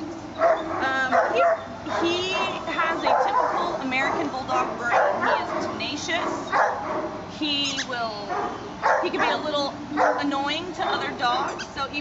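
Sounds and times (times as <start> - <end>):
dog crying: 0.3 - 11.8.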